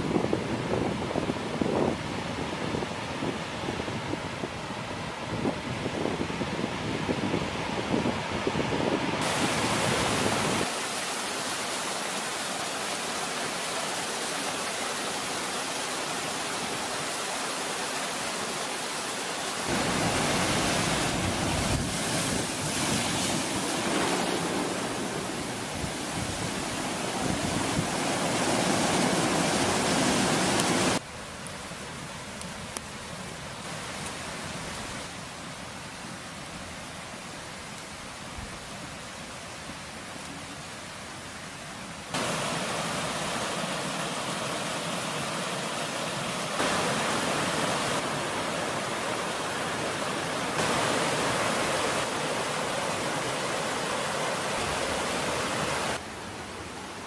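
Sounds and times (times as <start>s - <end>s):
ocean surf on beach: 0.0s - 57.0s
waterfall rushing: 4.6s - 31.1s, 31.7s - 57.0s
wind buffeting microphone: 19.7s - 31.0s.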